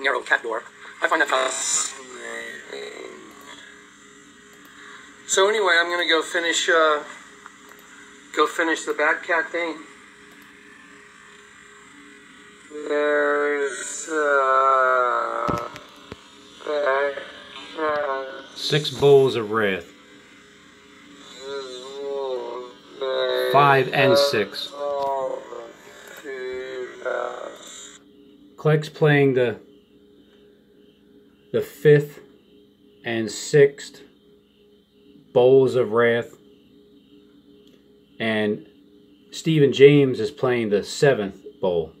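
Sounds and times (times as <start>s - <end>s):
wavering voice through speakers: 0.0s - 3.8s, 12.7s - 16.0s, 16.6s - 19.9s, 21.2s - 28.0s
low electrical hum: 0.0s - 42.0s
man's voice trailing off: 21.4s - 27.6s.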